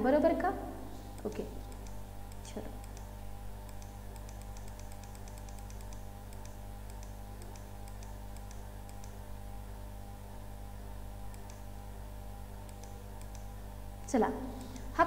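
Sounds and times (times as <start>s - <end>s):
steady low hum: 0.0s - 15.0s
computer keys clicking: 1.2s - 9.2s, 11.3s - 11.7s, 12.6s - 14.9s.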